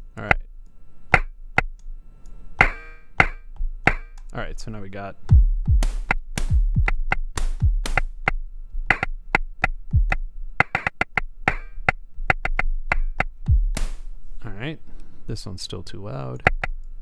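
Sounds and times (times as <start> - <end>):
steady low hum: 0.0 - 17.0
clicky chirping percussion hits: 2.6 - 4.3, 5.3 - 14.1
synthesized kick drums: 5.3 - 10.9, 12.3 - 14.1.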